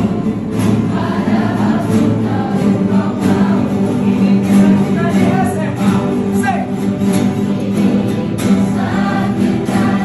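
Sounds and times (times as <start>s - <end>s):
group singing in unison: 0.0s - 5.0s, 7.0s - 10.0s
acoustic guitars strumming: 0.0s - 10.0s.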